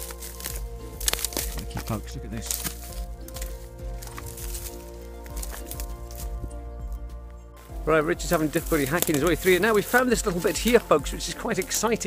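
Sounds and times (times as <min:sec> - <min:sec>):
footsteps crackling through undergrowth: 0:00.0 - 0:12.0
music of sustained chords: 0:00.0 - 0:12.0.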